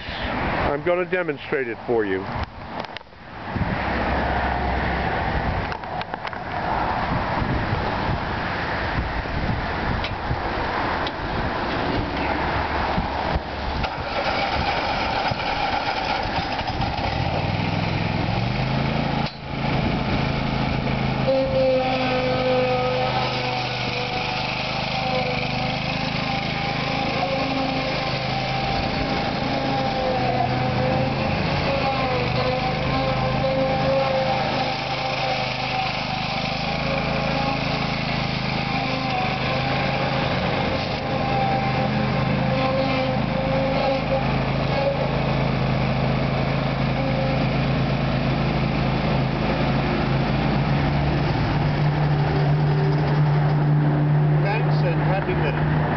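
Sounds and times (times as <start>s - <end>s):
lawn mower engine running: 0.0s - 4.2s, 4.9s - 55.9s.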